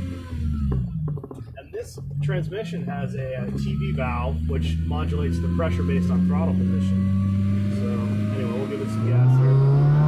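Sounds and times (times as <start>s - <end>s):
car engine drone from inside: 0.0s - 10.0s.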